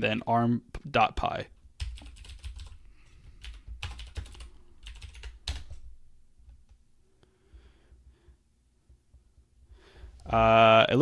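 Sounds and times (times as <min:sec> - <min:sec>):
computer keyboard typing: 0:01.5 - 0:06.8.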